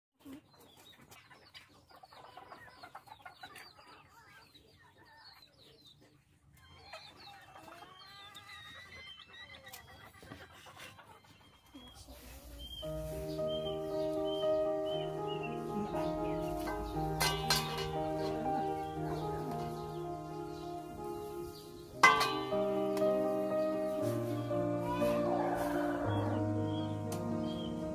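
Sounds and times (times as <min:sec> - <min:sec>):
chickens clucking: 0:00.2 - 0:27.9
small birds chirping: 0:00.2 - 0:27.9
background music with held notes: 0:12.6 - 0:27.9.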